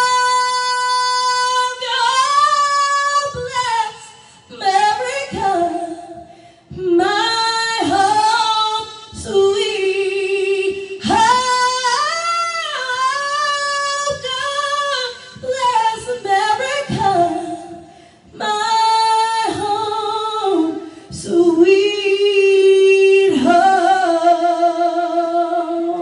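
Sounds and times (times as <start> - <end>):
woman singing unaccompanied: 0.0 - 26.0
breaths between phrases: 6.2 - 6.7.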